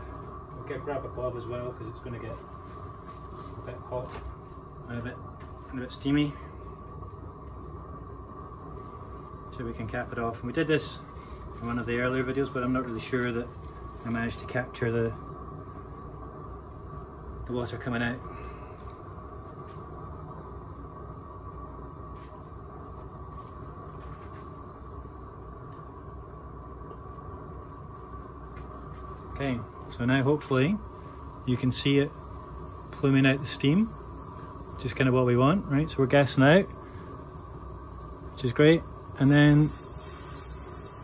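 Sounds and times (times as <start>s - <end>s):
gas torch burning: 0.0s - 41.0s.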